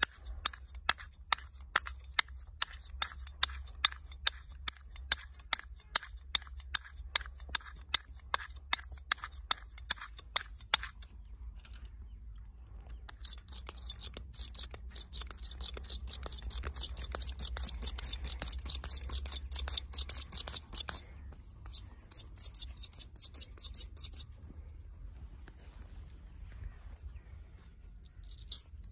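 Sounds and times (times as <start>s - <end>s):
razor scraping on whetstone: 0.0s - 11.1s, 13.1s - 24.3s.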